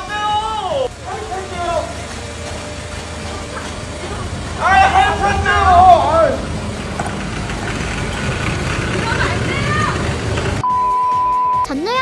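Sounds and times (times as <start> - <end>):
road traffic rumble: 0.0 - 10.7.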